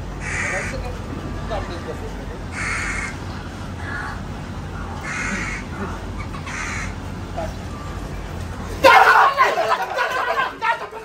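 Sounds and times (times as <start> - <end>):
bird harsh calls: 0.2 - 0.9, 2.4 - 8.2.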